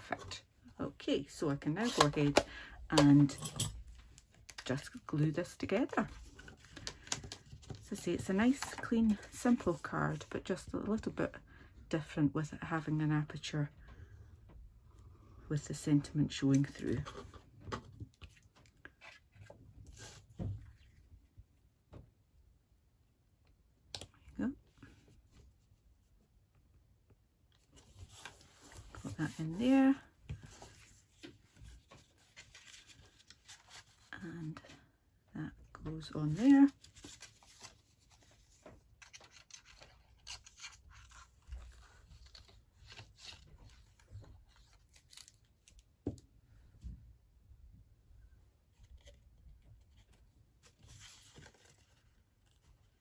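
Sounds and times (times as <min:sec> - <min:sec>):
card stock rustling and tapping: 0:05.9 - 0:09.9, 0:35.9 - 0:42.5
card stock rustling and scraping: 0:27.7 - 0:34.6, 0:36.2 - 0:45.4, 0:49.8 - 0:53.0.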